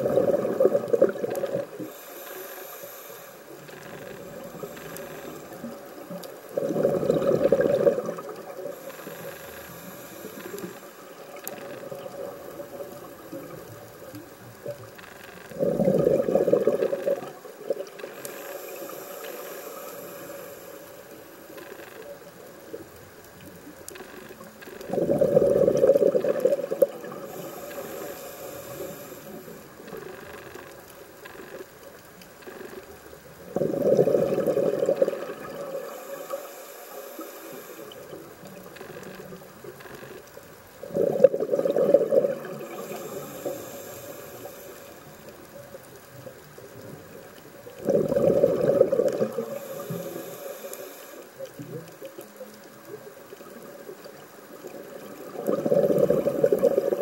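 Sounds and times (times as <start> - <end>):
rush of exhaled bubbles: 0.0 - 2.0, 6.5 - 8.8, 15.5 - 18.0, 24.8 - 27.8, 33.4 - 36.0, 40.8 - 43.8, 47.7 - 50.2, 54.1 - 57.0
high hiss of regulator inhalation: 1.9 - 5.5, 8.8 - 11.1, 18.0 - 21.1, 27.3 - 29.6, 35.8 - 38.1, 42.6 - 45.1, 49.4 - 51.3.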